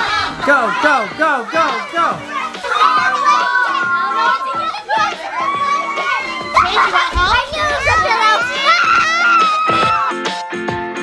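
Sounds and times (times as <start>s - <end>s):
children shrieking and shouting: 0.0s - 10.6s.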